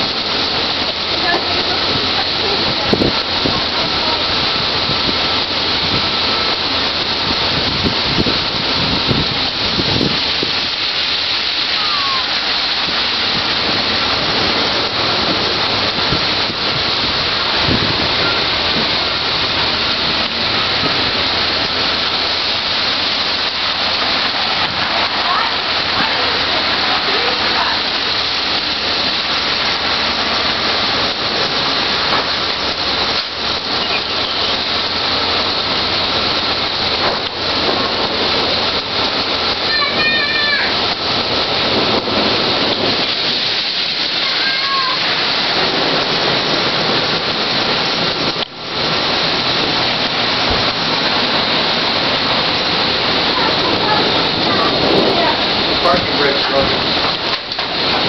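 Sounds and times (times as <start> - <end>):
heavy rain on pavement and cars: 0.0 - 58.0.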